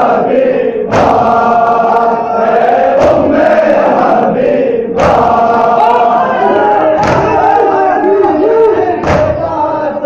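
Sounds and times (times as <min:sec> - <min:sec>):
men chanting lament: 0:00.0 - 0:10.0
sharp slap or knock: 0:00.9 - 0:01.4, 0:05.0 - 0:05.4, 0:07.0 - 0:07.4, 0:09.0 - 0:09.4.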